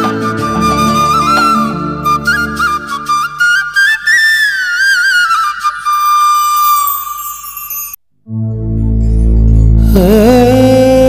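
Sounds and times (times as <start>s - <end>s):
flute holding long note: 0.0s - 6.6s.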